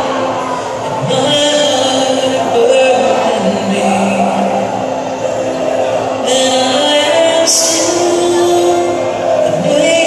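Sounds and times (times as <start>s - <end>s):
person singing a hymn: 6.2s - 10.0s.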